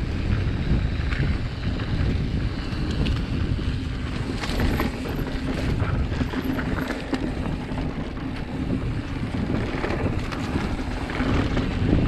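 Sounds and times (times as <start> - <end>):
bike clicks and rattles: 0.0 - 12.0
wind buffeting microphone: 0.0 - 12.0
tyres rolling on dirt: 0.2 - 12.0.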